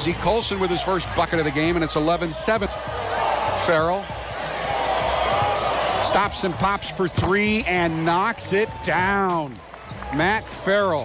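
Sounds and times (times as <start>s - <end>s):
arena crowd noise: 0.0s - 11.0s
basketball dribbled on hardwood: 6.6s - 7.6s.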